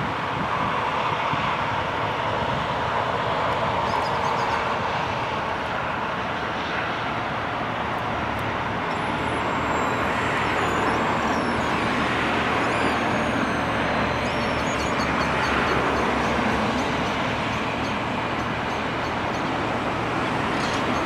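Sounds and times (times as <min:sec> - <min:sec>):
road traffic noise: 0:00.0 - 0:21.0
diesel engine running: 0:00.1 - 0:21.0.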